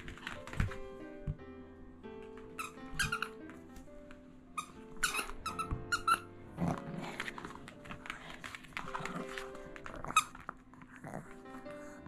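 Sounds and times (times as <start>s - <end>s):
background music: 0.0s - 12.0s
rubber squeaky toy squeaks: 2.5s - 3.4s, 4.6s - 6.3s.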